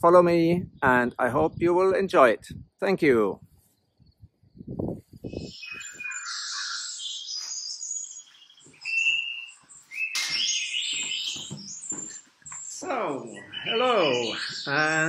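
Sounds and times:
birds singing: 3.6s - 15.0s.

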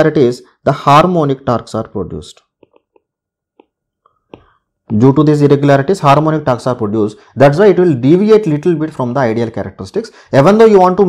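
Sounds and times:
man speaking: 0.0s - 2.6s, 4.9s - 11.0s.

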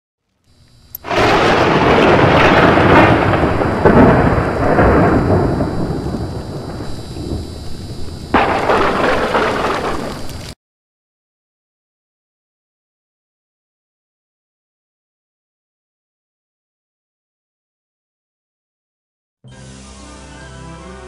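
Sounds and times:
sharp crack: 0.9s - 10.6s
rumbling crash: 1.1s - 10.6s.

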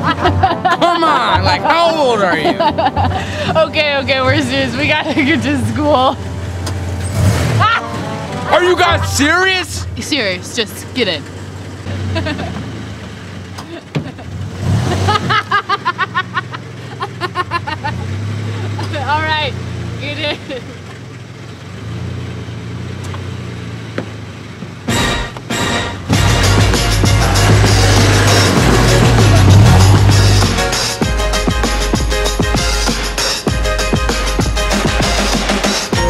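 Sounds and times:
van engine idling: 0.0s - 36.0s
person speaking: 0.8s - 6.2s, 7.7s - 11.0s.

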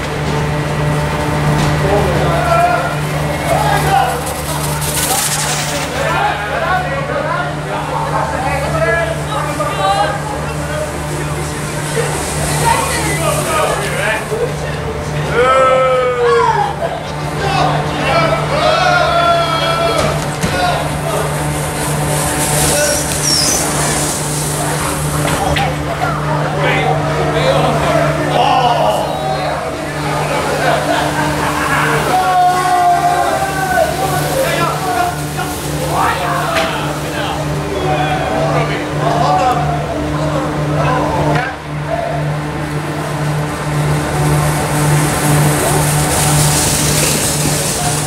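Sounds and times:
snow tube sliding over snow: 0.0s - 41.2s, 42.0s - 48.0s
people's voices: 0.0s - 48.0s
steady low hum: 0.0s - 48.0s.

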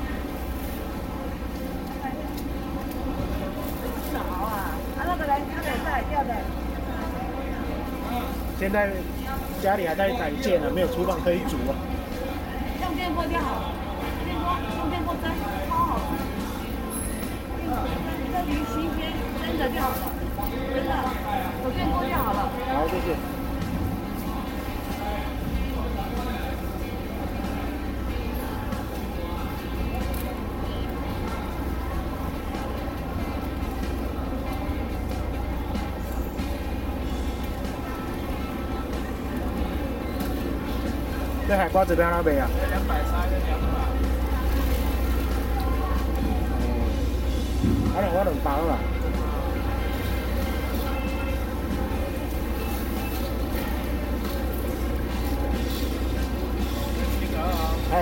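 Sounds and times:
indistinct chatter of people: 0.0s - 58.0s
steady low rumble: 11.2s - 41.5s, 42.3s - 58.0s
low rumble: 44.2s - 50.3s.

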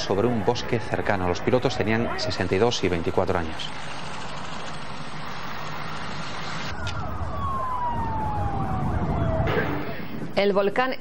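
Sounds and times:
siren winding down: 5.2s - 10.6s
steady noisy rush: 9.5s - 10.6s.

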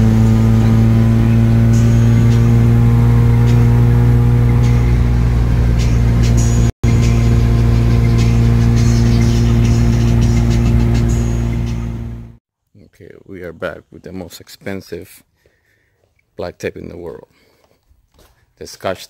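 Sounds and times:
car engine cruising: 0.0s - 12.4s
road noise: 0.0s - 12.4s.

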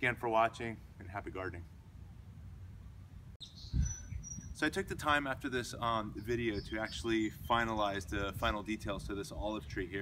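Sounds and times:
high bird chirp: 3.4s - 4.6s, 6.1s - 8.2s.

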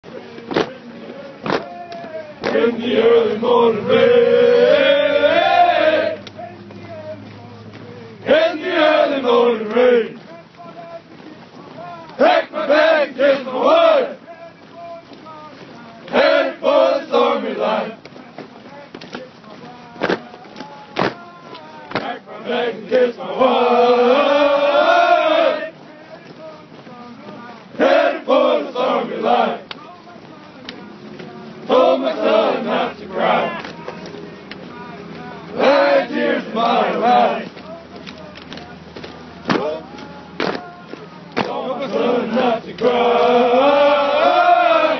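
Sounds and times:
soldiers chanting marching cadence: 0.1s - 44.9s.

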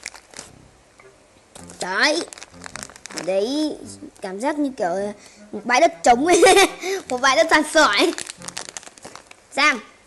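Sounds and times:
boy's voice: 1.6s - 8.4s, 9.5s - 9.9s.

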